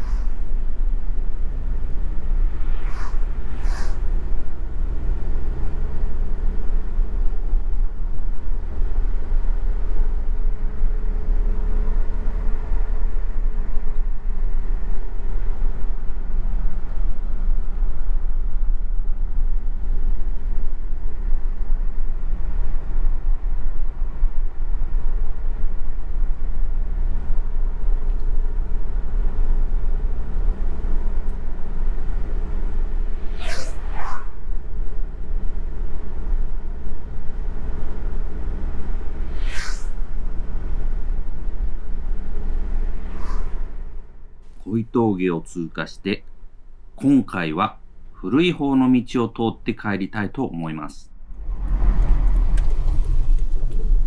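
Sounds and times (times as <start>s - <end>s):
car engine and tyre rumble: 0.0s - 54.0s
faint hum rising and falling: 0.0s - 54.0s.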